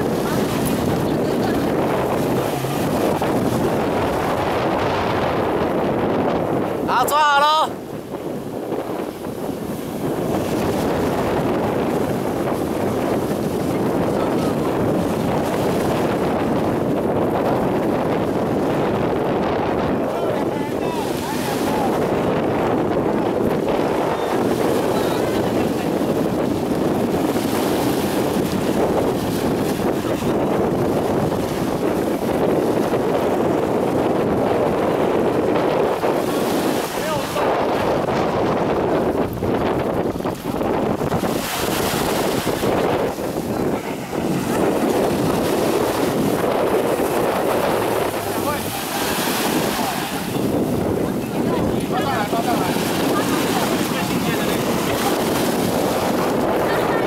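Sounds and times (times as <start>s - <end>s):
jet ski engines: 0.0s - 57.0s
small waves washing in: 0.0s - 57.0s
wind noise on microphone: 0.0s - 57.0s.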